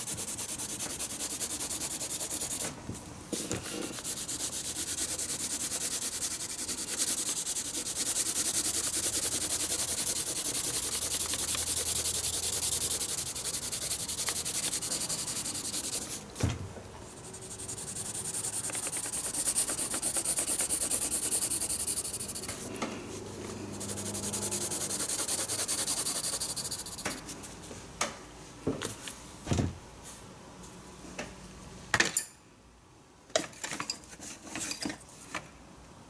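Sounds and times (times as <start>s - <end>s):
pencil shading on paper: 0.0s - 2.6s, 3.6s - 16.2s, 17.1s - 22.7s, 23.6s - 27.4s.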